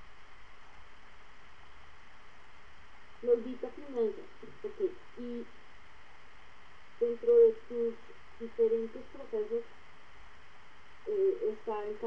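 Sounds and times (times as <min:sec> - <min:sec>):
steady hiss: 0:00.0 - 0:12.0
garbled voice over web call: 0:03.2 - 0:05.4, 0:07.0 - 0:09.6, 0:11.1 - 0:12.0.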